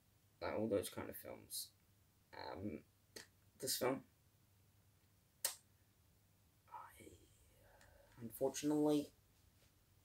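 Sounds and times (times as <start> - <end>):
faint breathy vocal sound: 6.7 - 8.3.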